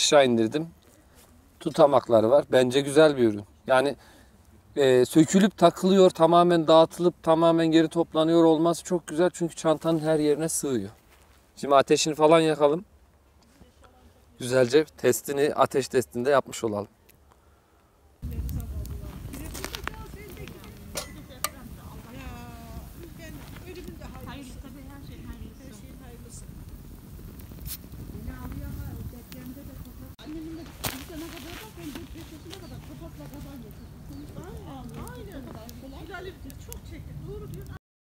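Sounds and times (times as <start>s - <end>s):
campfire crackling and popping: 0.0s - 37.8s
steady low rumble: 18.2s - 30.2s.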